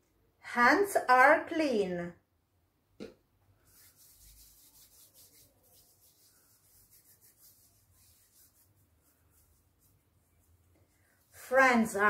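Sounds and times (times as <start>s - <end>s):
palms rubbing together: 3.6s - 12.0s.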